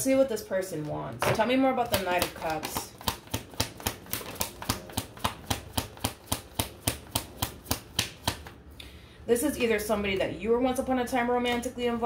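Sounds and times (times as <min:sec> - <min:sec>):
cards being shuffled: 0:01.9 - 0:08.6.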